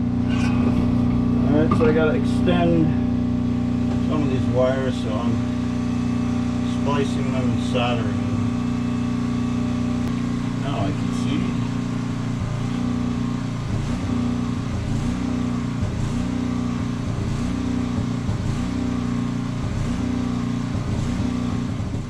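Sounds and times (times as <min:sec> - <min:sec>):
motor droning: 0:00.0 - 0:22.0.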